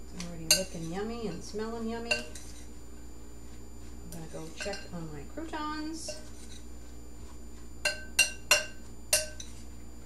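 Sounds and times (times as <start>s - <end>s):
faint stirring: 0.1s - 9.8s
utensil clinking ceramic bowl: 7.8s - 9.6s.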